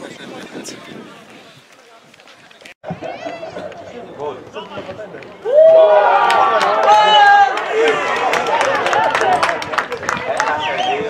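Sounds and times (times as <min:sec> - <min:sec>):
faint outdoor chatter: 0:00.0 - 0:11.0
people shouting and calling: 0:05.4 - 0:09.6.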